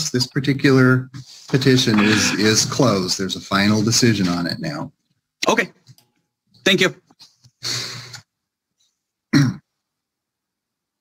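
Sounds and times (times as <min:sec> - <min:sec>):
man clearing throat: 0:01.9 - 0:02.6, 0:09.3 - 0:09.7.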